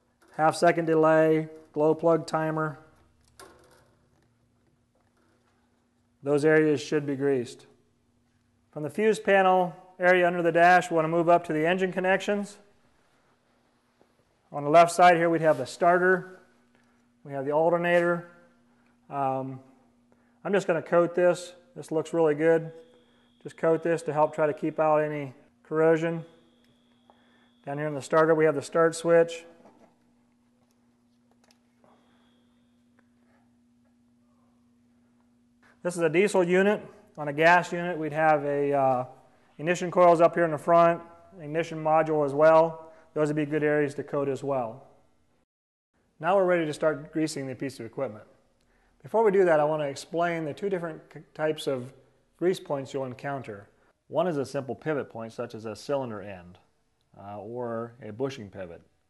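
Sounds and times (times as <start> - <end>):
faint steady hum: 0.0 - 45.4, 46.0 - 59.0.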